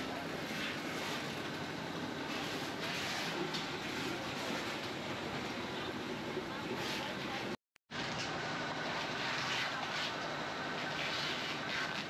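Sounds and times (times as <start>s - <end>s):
busy market ambience: 0.0s - 12.0s.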